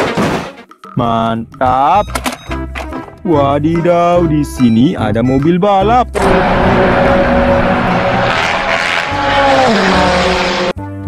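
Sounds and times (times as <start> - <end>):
race car engine at high revs: 6.2 - 10.9.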